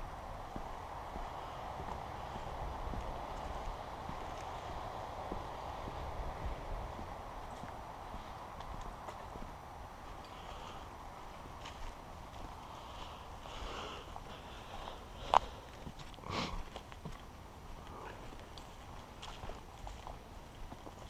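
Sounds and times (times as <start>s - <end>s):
footsteps on wooden boardwalk: 0.0s - 21.0s.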